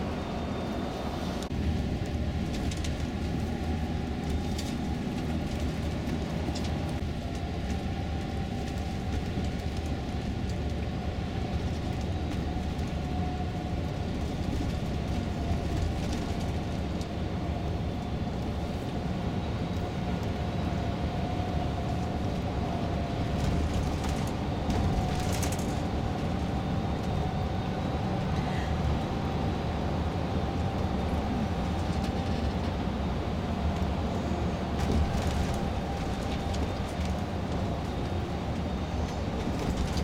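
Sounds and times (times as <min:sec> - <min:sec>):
coach engine and road noise: 0:00.0 - 0:40.0.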